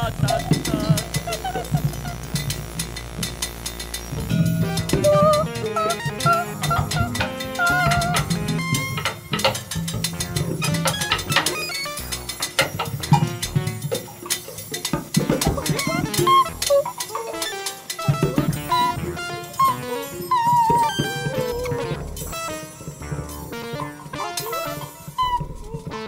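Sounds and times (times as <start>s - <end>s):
wavering pitched line: 0.0s - 14.3s, 15.0s - 26.0s
percussion clatter: 0.0s - 26.0s.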